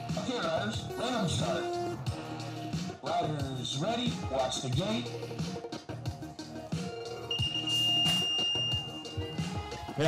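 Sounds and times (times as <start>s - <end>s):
background music with beat: 0.0s - 10.0s
electronic start-gate tone: 7.3s - 9.6s.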